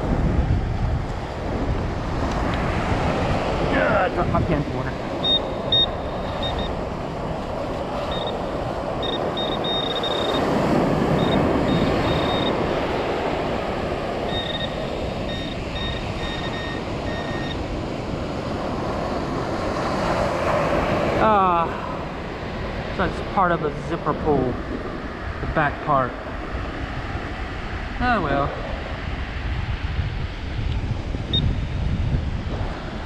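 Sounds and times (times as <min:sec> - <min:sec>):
steady rushing noise: 0:00.0 - 0:33.0
pinpointer high-pitched beeping: 0:05.2 - 0:06.8, 0:08.0 - 0:10.5, 0:11.1 - 0:12.6, 0:14.3 - 0:17.6.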